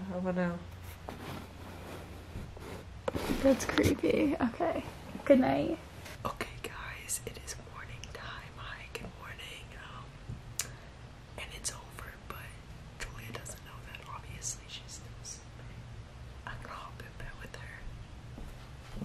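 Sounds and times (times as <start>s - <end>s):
low background hum: 0.0s - 19.0s.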